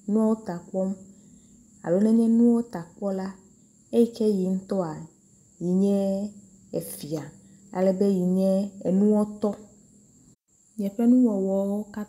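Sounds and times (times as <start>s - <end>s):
faint high-pitched whine: 0.0s - 12.0s.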